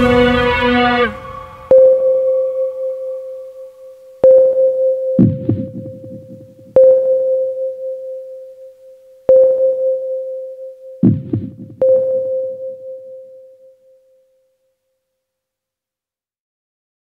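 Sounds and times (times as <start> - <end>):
synth tone: 0.0 - 14.2
low booming drum hits: 5.2 - 6.8, 11.0 - 11.8.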